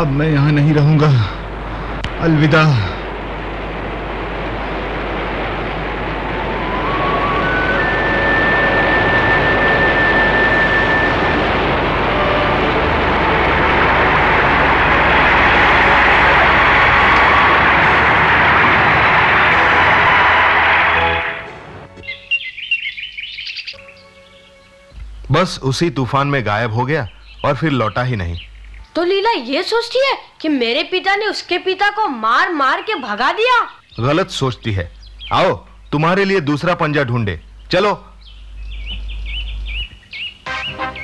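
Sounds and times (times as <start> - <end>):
heavy rain pouring: 0.0 - 22.0
birds chirping: 21.8 - 30.4, 32.4 - 41.0
rising music notes: 40.5 - 41.0.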